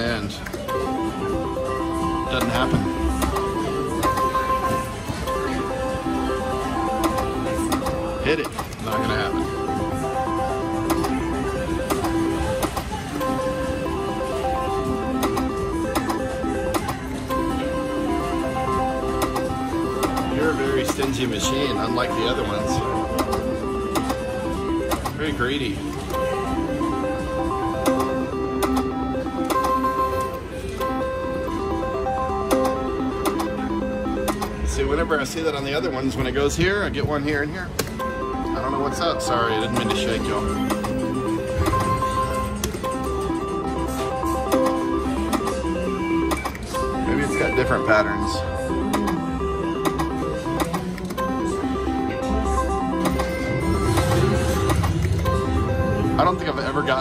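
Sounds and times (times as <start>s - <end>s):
slot machine electronic beeps: 0.0s - 57.0s.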